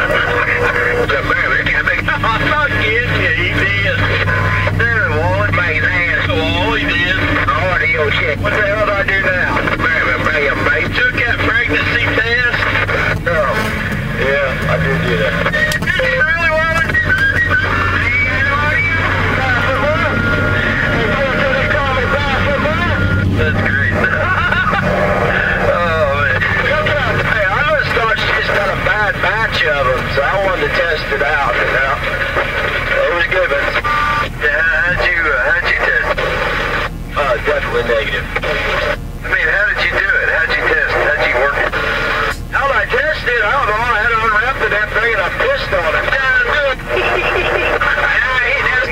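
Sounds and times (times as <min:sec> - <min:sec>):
indistinct voices talking: 0:00.0 - 0:48.9
low engine hum: 0:00.0 - 0:48.9
steady low rumble: 0:00.0 - 0:48.9.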